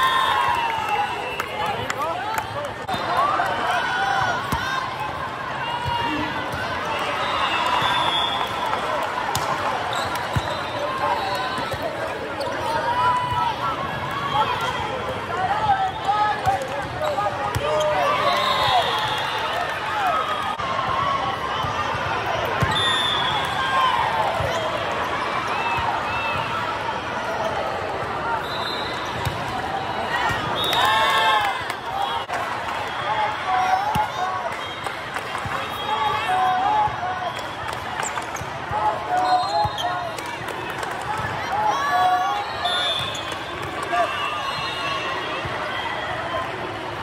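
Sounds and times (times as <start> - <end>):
players and spectators calling: 0.0 - 47.0.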